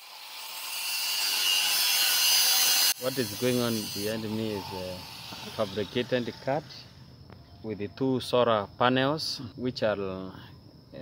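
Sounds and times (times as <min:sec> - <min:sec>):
angle grinder cutting metal: 0:00.0 - 0:06.9.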